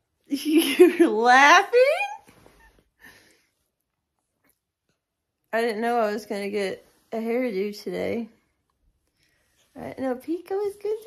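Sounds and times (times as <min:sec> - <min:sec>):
faint breath: 0:03.0 - 0:03.7.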